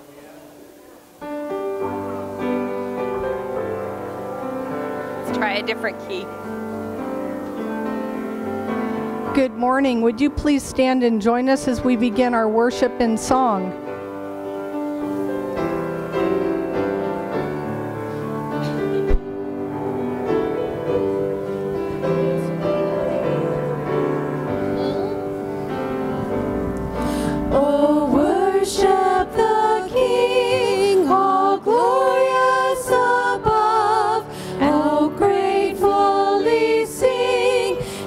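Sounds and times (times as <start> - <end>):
piano playing hymn chords: 0.0 - 38.0
women singing worship song: 21.6 - 24.5, 27.0 - 38.0
singers breathing: 26.8 - 27.5, 34.3 - 34.6, 37.8 - 38.0.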